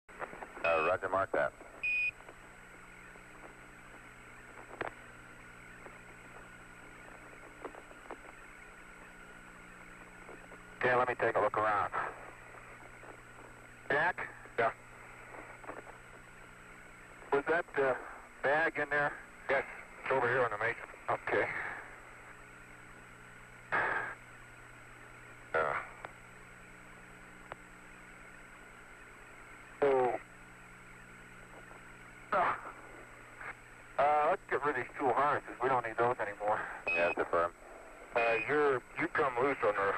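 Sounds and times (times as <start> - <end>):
faint constant tone: 0.1 - 39.9
radio hiss and hum: 0.1 - 39.9
sharp radio clicks: 0.1 - 39.9
voice over radio: 0.6 - 1.7, 10.8 - 12.8, 13.8 - 15.9, 17.2 - 22.0, 23.7 - 24.2, 25.5 - 26.1, 29.8 - 30.3, 32.3 - 39.9.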